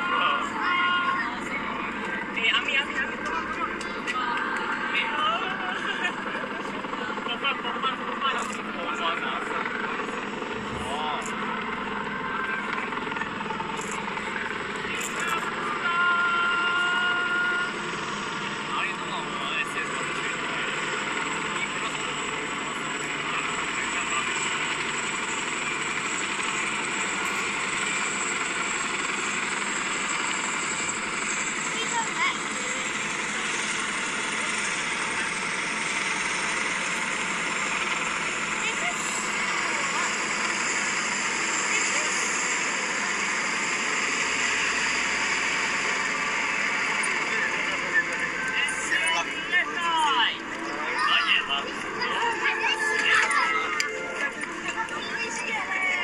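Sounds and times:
helicopter rotor drone: 0.0s - 56.0s
people's voices: 0.0s - 56.0s.

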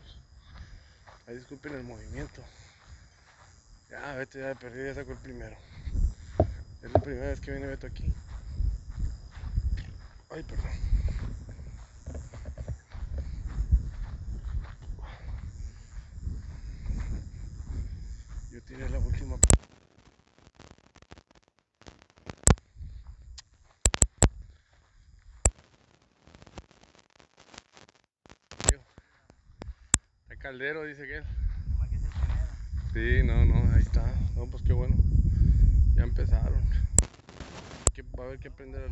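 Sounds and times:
low uneven rumble on microphone: 5.1s - 19.4s, 31.2s - 37.0s, 38.0s - 38.9s
sharp clicks: 19.4s - 19.6s, 21.8s - 22.6s, 23.4s - 24.4s, 28.3s - 30.0s, 37.0s - 38.0s.

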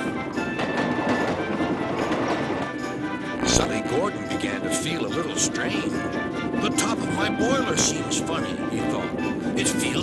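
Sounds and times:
background music: 0.0s - 10.0s
steam locomotive running: 0.0s - 10.0s
wheels clattering on rails: 0.0s - 10.0s.

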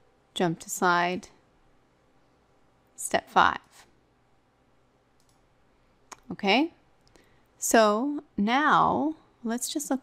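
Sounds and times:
computer mouse click: 5.2s - 5.5s.

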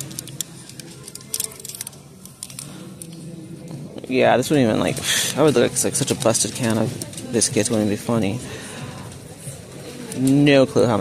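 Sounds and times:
plastic hangers clicking: 0.0s - 3.1s
store background murmur: 0.0s - 11.0s.

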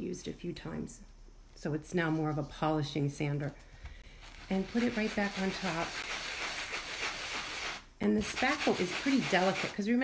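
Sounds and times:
sanding block rasping: 4.4s - 9.8s.

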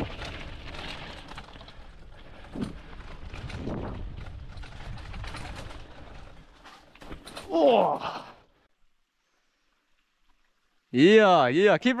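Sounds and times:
bike rattling over bumps: 0.0s - 7.9s
bike tyres on dirt trail: 0.0s - 11.6s.

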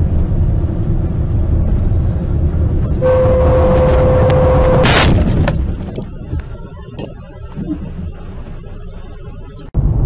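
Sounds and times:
low rumble: 0.0s - 10.0s
loud bang: 2.9s - 5.8s.

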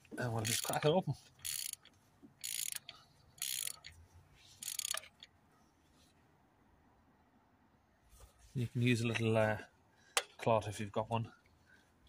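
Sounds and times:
socket ratchet clicking: 0.4s - 3.9s, 4.6s - 5.3s.

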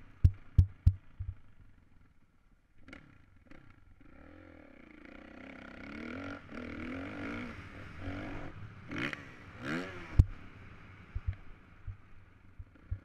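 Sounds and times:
dirt bike engine revving: 2.9s - 10.4s.

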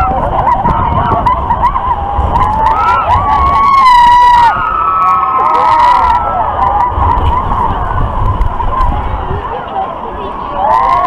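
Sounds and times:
riders screaming and yelling: 0.0s - 9.6s, 10.2s - 11.0s
low rumble of ride: 0.0s - 11.0s.

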